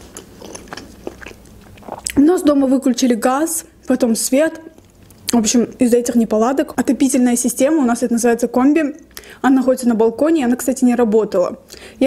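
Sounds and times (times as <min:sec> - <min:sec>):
chewing food: 0:00.0 - 0:02.2.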